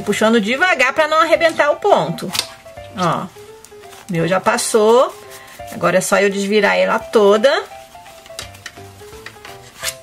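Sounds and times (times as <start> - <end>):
soft background music: 0.0 - 10.0
fabric rustling and rubbing: 2.5 - 10.0.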